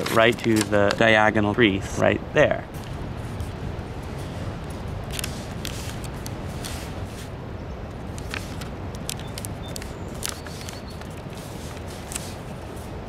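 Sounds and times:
paper crinkling and rustling: 0.0 - 1.2, 2.8 - 7.3, 8.0 - 13.0
steady low rumble: 0.4 - 10.3.

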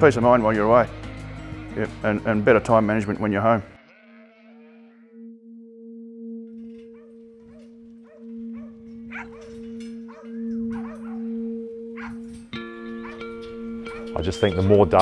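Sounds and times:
sheep bleating: 3.6 - 5.2
held music chord: 5.7 - 15.0.

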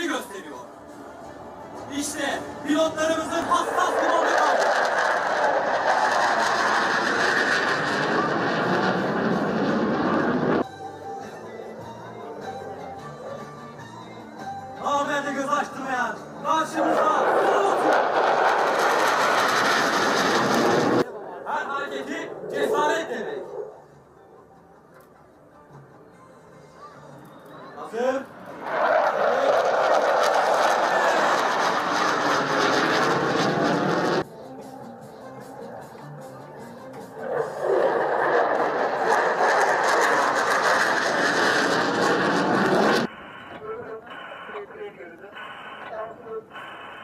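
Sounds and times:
fighter jet flying overhead: 2.0 - 10.7, 16.7 - 23.9, 28.3 - 34.3, 37.1 - 43.2.

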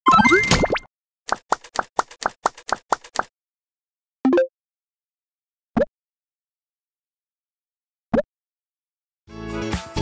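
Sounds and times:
rising cartoon bloops: 0.1 - 0.9.

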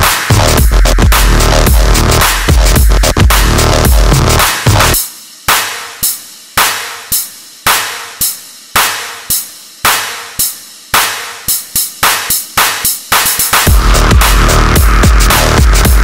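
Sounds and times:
repeating electronic drum hit: 0.0 - 16.0.

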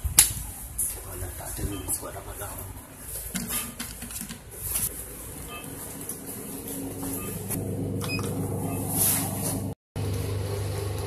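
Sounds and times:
lift machine hum: 4.9 - 11.0.

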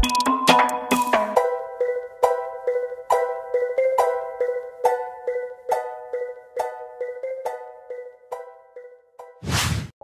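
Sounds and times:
swoosh sound effect: 9.4 - 10.0.

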